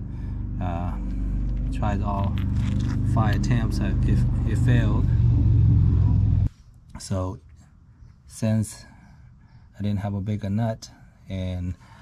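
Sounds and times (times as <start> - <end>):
low engine drone: 0.0 - 6.6.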